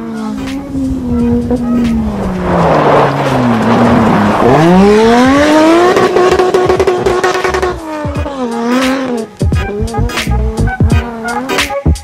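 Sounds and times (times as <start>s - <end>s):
engine revving: 0.0s - 12.0s
tyres crunching on loose dirt: 1.4s - 9.8s.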